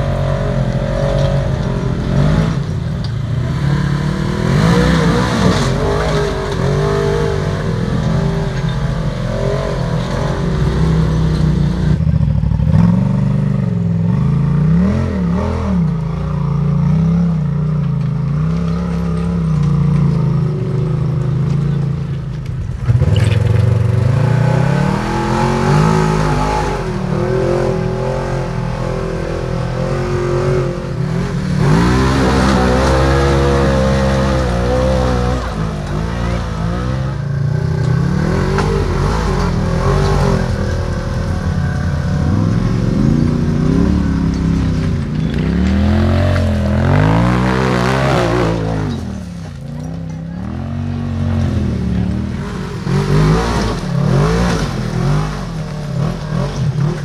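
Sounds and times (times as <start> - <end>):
engines revving in bursts: 0.0 - 16.1, 22.9 - 57.0.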